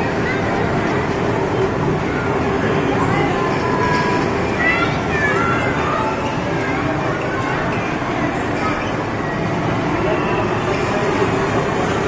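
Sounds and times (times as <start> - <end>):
children's voices: 0.0 - 12.0
crowd chatter: 0.0 - 12.0.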